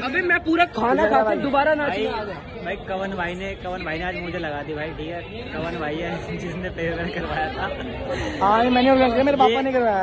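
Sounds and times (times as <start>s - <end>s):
young people chatting: 0.0s - 10.0s.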